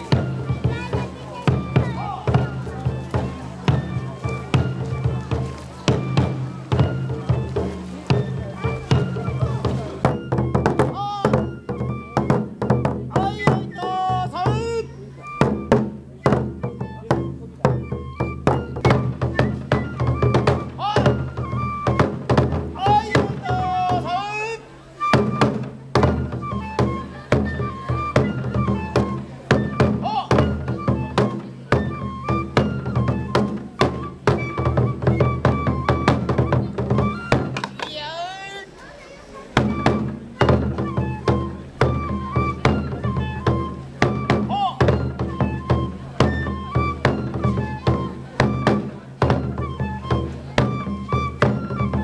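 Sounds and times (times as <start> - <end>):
taiko drum beats: 0.0 - 24.3, 24.9 - 52.0
bamboo flute high notes: 0.0 - 52.0.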